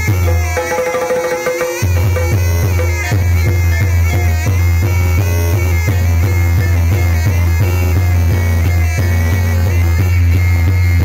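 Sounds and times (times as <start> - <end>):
drums keeping a steady beat: 0.0 - 11.0
high wavering melody: 0.0 - 11.0.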